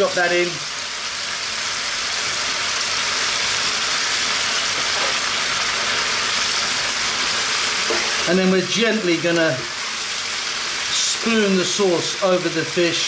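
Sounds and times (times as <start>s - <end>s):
vegetables sizzling in a wok: 0.0s - 13.0s.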